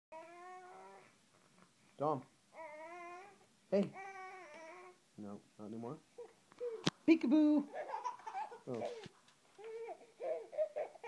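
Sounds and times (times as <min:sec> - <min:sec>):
infant whining: 0:00.2 - 0:01.2, 0:02.5 - 0:05.0, 0:06.2 - 0:06.9, 0:07.7 - 0:11.0.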